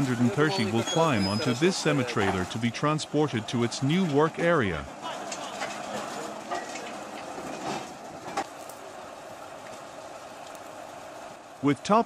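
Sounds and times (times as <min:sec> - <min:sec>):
bulldozer running: 0:00.0 - 0:12.0.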